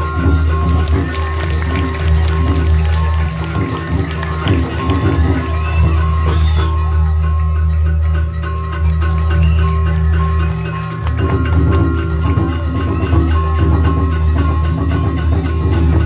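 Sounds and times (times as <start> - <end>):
metallophones and gongs ringing: 0.0 - 16.0.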